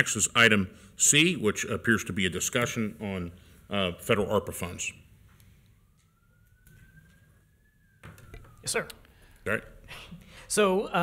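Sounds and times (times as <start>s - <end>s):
faint siren wail: 1.0s - 11.0s.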